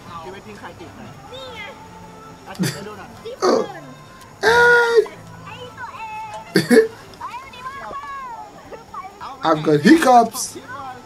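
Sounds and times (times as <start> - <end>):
faint speech: 0.0 - 11.0
person hiccuping: 2.6 - 2.8, 6.5 - 6.9.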